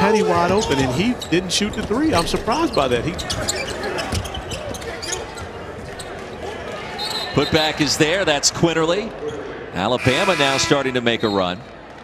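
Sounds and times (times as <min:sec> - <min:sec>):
sneakers squeaking on hardwood: 0:00.4 - 0:06.1.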